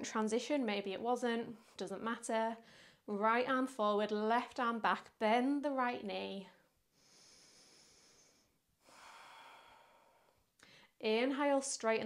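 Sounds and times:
faint slow breathing: 0:02.6 - 0:03.1, 0:06.9 - 0:11.0.

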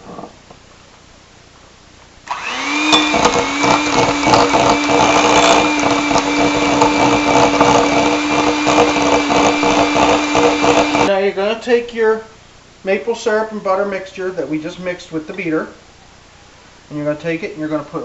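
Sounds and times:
electric mixer motor whining: 0:02.3 - 0:11.1
beaters clattering in glass bowl: 0:02.8 - 0:08.0.

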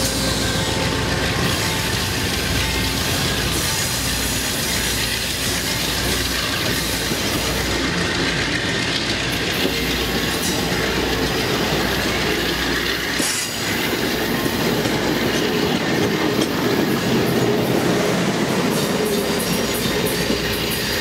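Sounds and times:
train wheels rumbling on rail: 0:00.0 - 0:21.0
wheels clicking over rail joints: 0:00.8 - 0:21.0.

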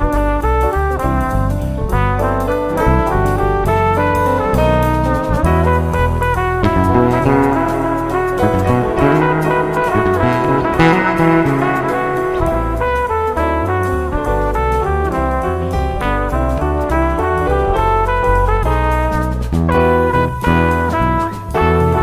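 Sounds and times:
fretless electric bass guitar: 0:00.0 - 0:22.0
horn-like lead melody: 0:05.4 - 0:15.2.

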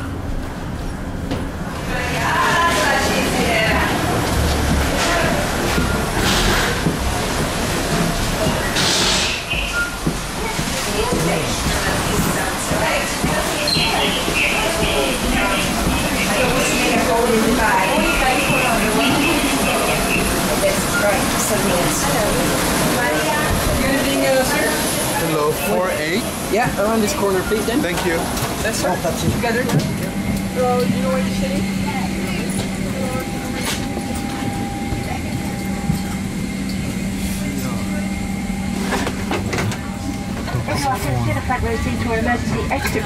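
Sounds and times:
passengers chattering: 0:00.0 - 0:43.0
public address announcement: 0:01.5 - 0:43.0
low cabin systems hum: 0:09.7 - 0:24.4, 0:27.2 - 0:43.0.

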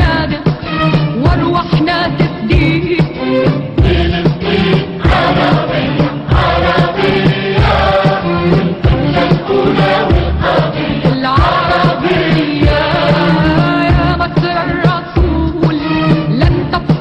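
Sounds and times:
choir singing: 0:03.4 - 0:14.8
drum hits: 0:03.7 - 0:15.8.

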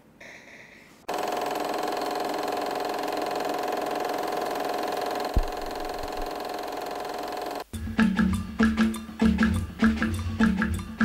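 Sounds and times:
film projector whirring: 0:01.1 - 0:07.7
low thump: 0:05.4 - 0:06.3.

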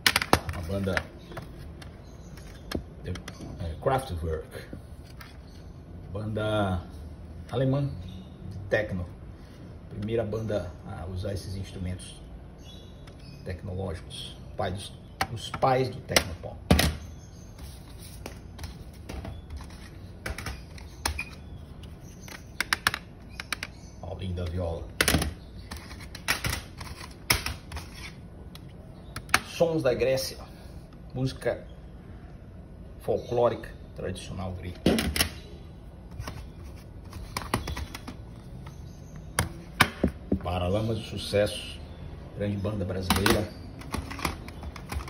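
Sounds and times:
plastic cases clicking: 0:00.0 - 0:03.5, 0:18.6 - 0:29.6, 0:36.1 - 0:40.3, 0:43.0 - 0:45.0.

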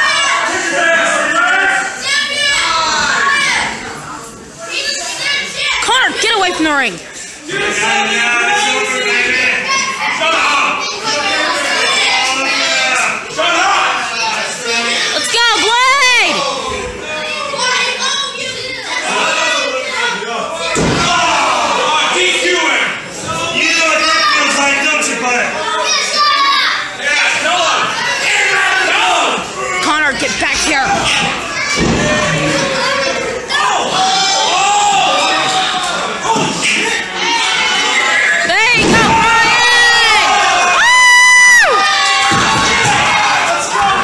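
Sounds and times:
people's voices: 0:00.0 - 0:44.0.

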